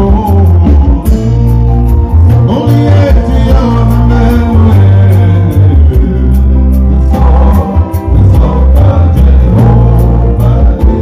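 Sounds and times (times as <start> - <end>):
electric guitar: 0.0 - 11.0
gospel band music: 0.0 - 11.0
loud bass line: 0.0 - 11.0.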